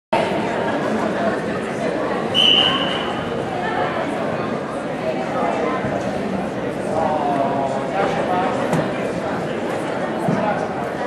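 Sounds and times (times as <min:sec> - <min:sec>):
chatter of spectators: 0:00.1 - 0:11.0.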